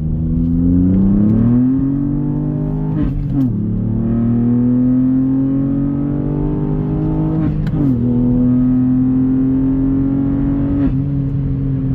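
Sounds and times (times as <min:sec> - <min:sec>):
car engine accelerating: 0:00.0 - 0:11.9.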